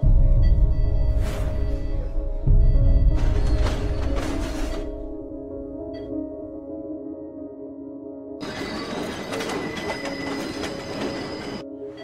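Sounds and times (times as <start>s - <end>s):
freight train rolling: 8.4s - 11.6s
wheels squealing on rails: 8.4s - 12.0s.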